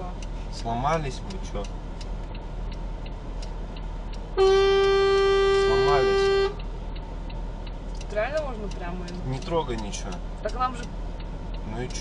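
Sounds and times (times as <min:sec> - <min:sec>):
vehicle horn blast: 0:04.4 - 0:06.6.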